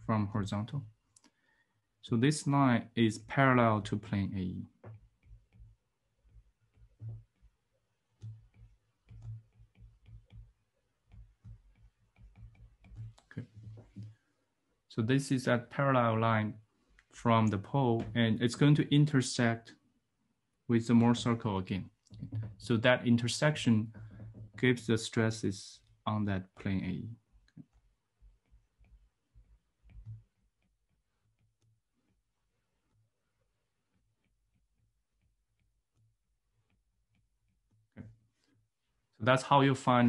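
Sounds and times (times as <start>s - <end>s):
stylus tapping on tablet screen: 4.6s - 14.3s, 22.0s - 22.7s, 23.5s - 24.7s, 27.3s - 38.7s.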